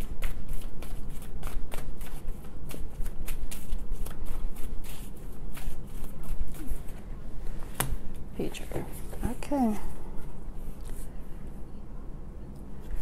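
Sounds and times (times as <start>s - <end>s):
cards being shuffled: 0.1s - 7.0s.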